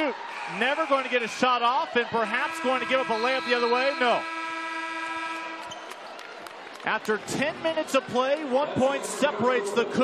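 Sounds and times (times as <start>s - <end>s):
arena horn steady tone: 2.2s - 5.7s.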